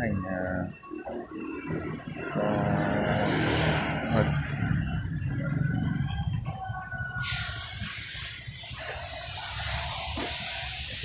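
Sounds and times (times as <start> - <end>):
faint music: 0.0 - 11.0
steady high hiss: 7.2 - 11.0.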